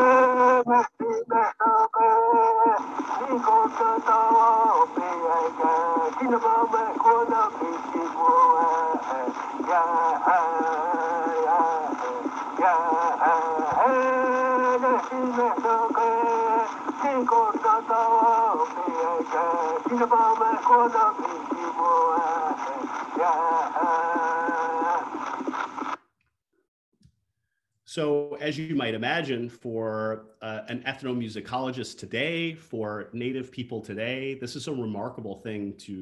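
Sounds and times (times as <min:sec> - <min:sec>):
man singing: 0:00.0 - 0:25.2
cylinder surface hiss: 0:02.6 - 0:26.0.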